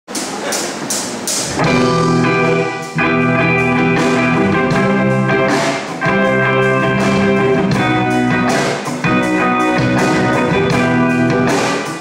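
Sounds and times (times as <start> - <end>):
distorted electric guitars and bass: 1.4 - 12.0.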